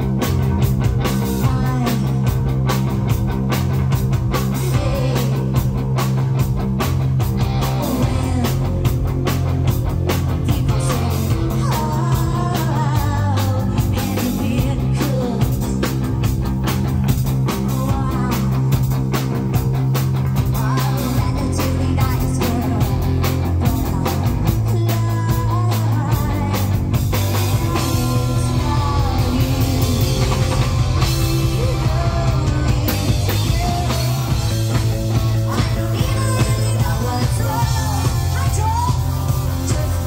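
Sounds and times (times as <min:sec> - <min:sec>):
bass guitar: 0:00.0 - 0:40.0
drums: 0:00.0 - 0:40.0
electric guitar: 0:00.0 - 0:40.0
person singing lead vocal: 0:01.0 - 0:02.5, 0:04.3 - 0:05.8, 0:07.4 - 0:16.2, 0:17.5 - 0:19.0, 0:20.4 - 0:40.0.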